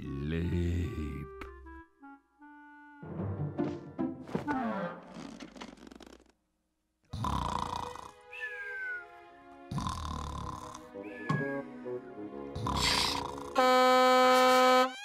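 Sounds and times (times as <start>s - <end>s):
cartoon snoring: 7.1s - 8.2s, 9.7s - 10.9s, 12.6s - 13.6s.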